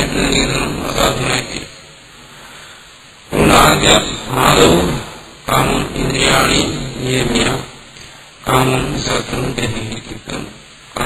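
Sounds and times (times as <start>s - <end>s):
man lecturing: 0.0s - 1.8s, 3.3s - 11.0s.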